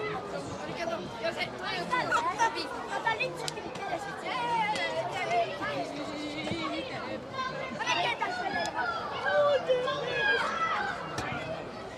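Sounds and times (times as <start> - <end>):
players calling and shouting: 1.0 - 11.9.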